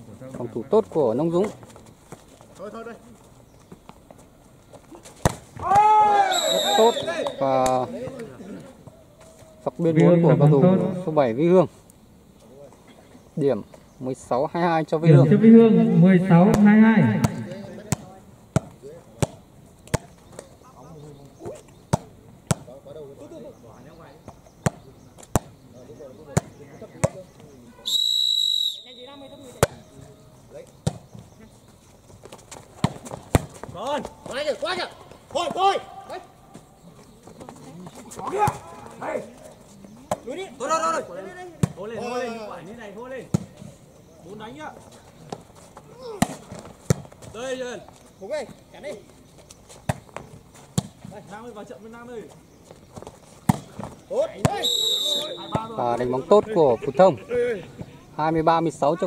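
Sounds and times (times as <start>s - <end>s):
ball hits: 5.2s - 6.0s, 16.4s - 20.5s, 29.6s - 29.9s, 53.5s - 54.6s, 55.2s - 55.8s
players and spectators shouting: 5.6s - 8.3s
referee's whistle: 6.1s - 7.5s, 27.7s - 29.6s, 54.5s - 55.8s
ball bouncing: 16.4s - 20.5s.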